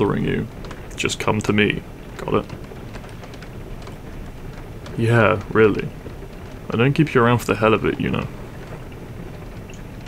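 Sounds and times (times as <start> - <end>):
raindrops ticking: 0.0 - 10.0
steady rain hiss: 0.0 - 10.0.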